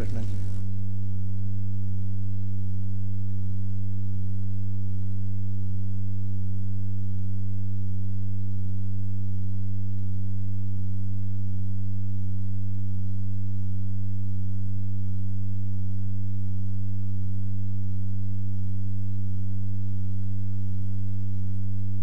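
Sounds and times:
electrical hum: 0.0s - 22.0s.

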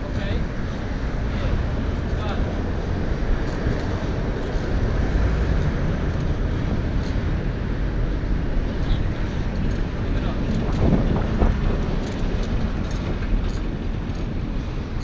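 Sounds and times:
city traffic rumble: 0.0s - 15.0s
wind buffeting microphone: 0.0s - 15.0s.

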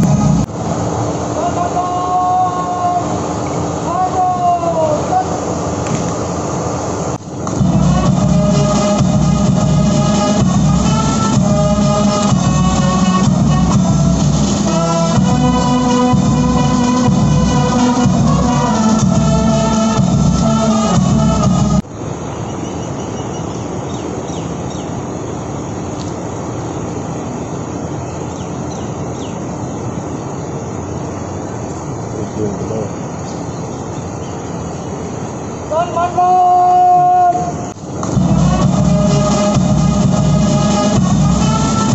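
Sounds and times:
ceremonial band music: 0.0s - 0.5s, 7.5s - 21.8s, 38.1s - 41.9s
noisy background: 0.0s - 41.9s
outdoor background noise: 0.0s - 41.9s.

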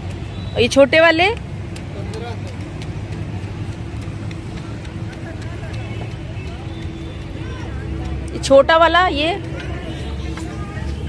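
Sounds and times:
scattered voices: 1.8s - 11.0s.

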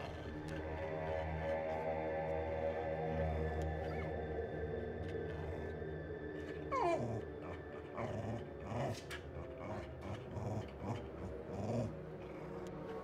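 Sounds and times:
steady low drone: 0.0s - 13.0s
dog low vocal sounds: 6.4s - 13.0s.

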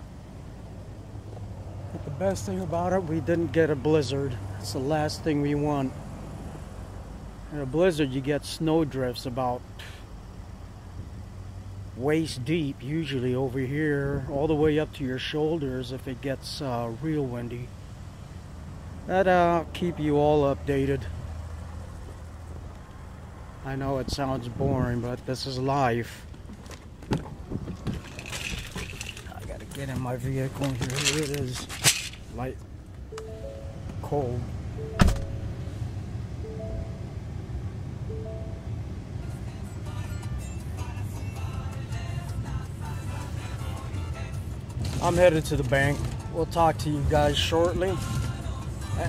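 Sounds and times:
two-note dashboard chime: 33.1s - 35.6s, 36.4s - 37.2s, 38.0s - 38.9s
music from car stereo: 38.1s - 45.4s, 47.2s - 49.0s.

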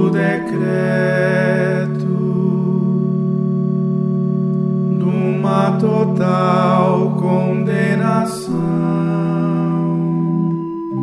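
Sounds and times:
person singing a hymn: 0.0s - 3.5s, 4.9s - 11.0s
held accompaniment chord: 0.0s - 11.0s.

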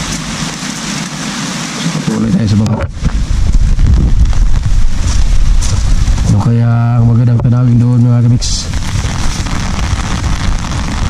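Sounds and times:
light rain: 0.0s - 11.0s
wind buffeting microphone: 2.4s - 11.0s
umbrella handling noise: 3.8s - 6.4s.

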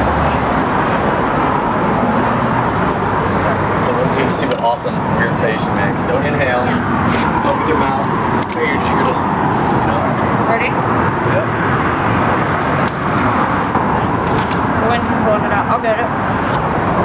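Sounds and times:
traffic noise: 0.0s - 17.0s.

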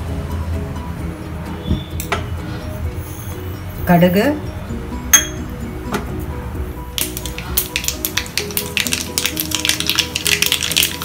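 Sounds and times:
background music: 0.0s - 11.0s
seeds popping in hot oil: 7.0s - 11.0s.

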